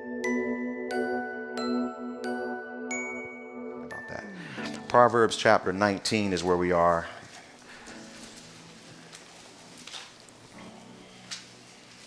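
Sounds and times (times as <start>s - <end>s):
paper pages rustling: 7.2s - 12.0s.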